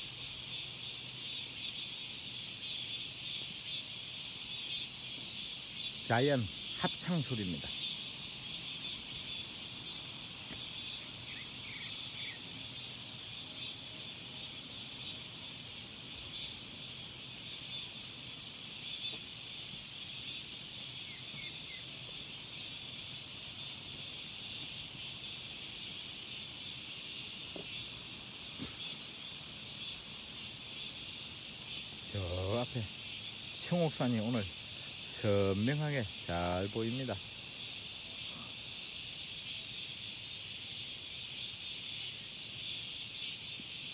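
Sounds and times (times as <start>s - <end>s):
cicadas buzzing: 0.0s - 43.9s.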